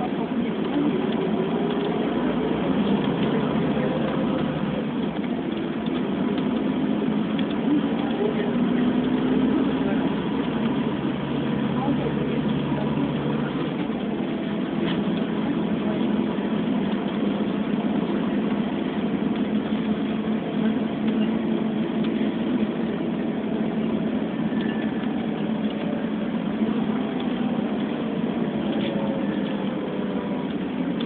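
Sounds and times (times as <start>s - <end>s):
vehicle road and engine rumble: 0.0s - 31.0s.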